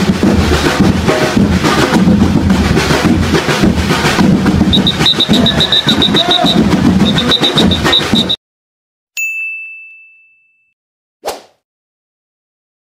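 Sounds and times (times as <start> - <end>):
festival crowd noise: 0.0 - 8.4
bright ding chime: 9.2 - 10.8
short swish: 11.2 - 11.6.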